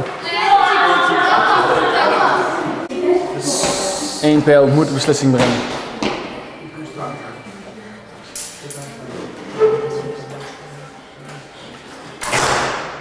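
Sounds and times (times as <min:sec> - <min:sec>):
murmured voices: 0:00.0 - 0:12.2.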